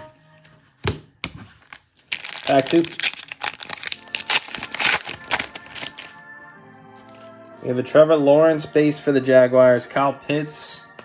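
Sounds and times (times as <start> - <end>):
foil wrapper crinkling and tearing: 1.6 - 6.1.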